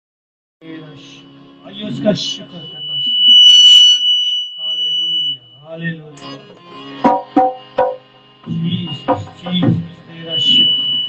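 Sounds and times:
man's voice: 0.6 - 3.3, 4.6 - 6.7, 8.4 - 11.0
microphone feedback whistle: 2.3 - 5.7, 10.2 - 11.0.

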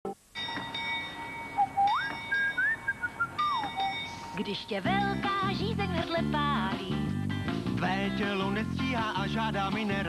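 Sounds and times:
whistled melody: 1.5 - 4.4.

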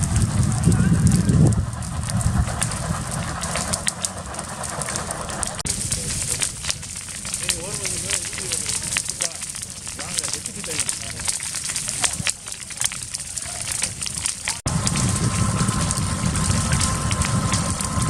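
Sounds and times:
low rumble: 0.0 - 18.0
wildfire crackling and popping: 0.0 - 18.0
faint voices: 0.4 - 14.6.

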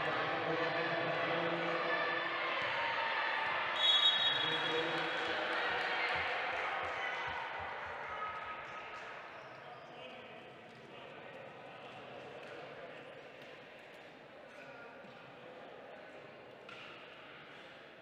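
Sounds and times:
referee's whistle: 3.8 - 4.8.

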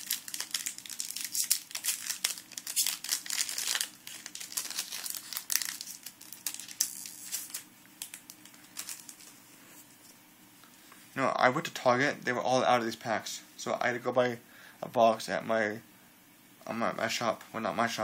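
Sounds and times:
foil wrapper crinkling: 0.0 - 9.4.

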